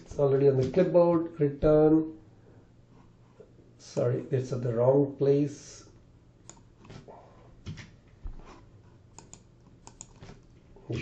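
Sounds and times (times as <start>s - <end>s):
keyboard keys clicking: 9.2s - 10.5s.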